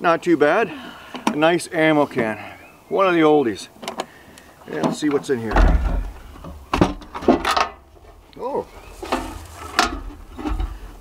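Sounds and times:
metal can latch clicks and clanks: 6.9s - 7.8s.

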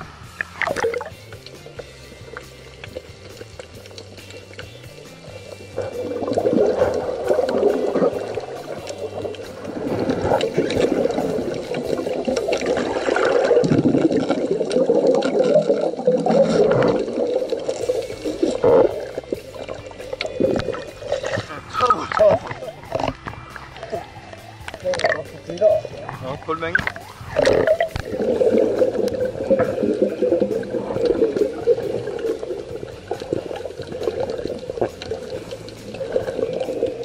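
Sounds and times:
background music: 0.0s - 37.0s
muffled underwater water noise: 0.0s - 37.0s
water rushing and bubbling: 0.0s - 37.0s.

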